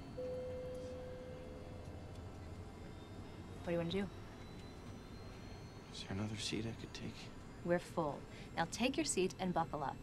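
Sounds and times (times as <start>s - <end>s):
airliner cabin hum: 0.0s - 10.0s
faint high whine: 0.0s - 10.0s.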